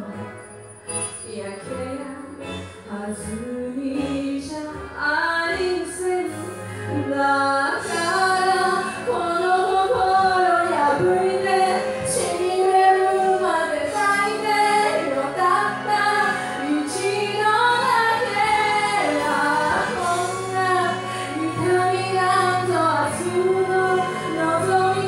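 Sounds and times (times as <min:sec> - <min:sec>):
instrumental accompaniment: 0:00.0 - 0:25.0
woman singing into a microphone: 0:01.2 - 0:25.0.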